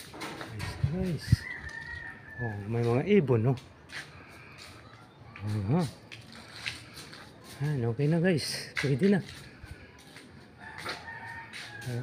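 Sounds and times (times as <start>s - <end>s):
rooster crowing faintly: 0.6s - 3.1s, 10.6s - 12.0s.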